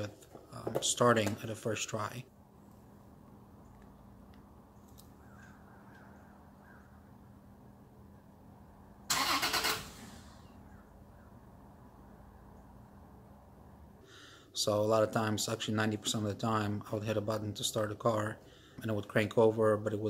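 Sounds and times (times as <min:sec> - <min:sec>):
engine cranking: 0:09.1 - 0:10.4.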